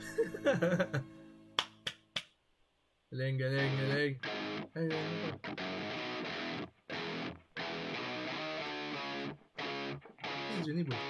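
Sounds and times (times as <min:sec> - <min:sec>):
music: 0:00.0 - 0:02.2, 0:03.4 - 0:11.0.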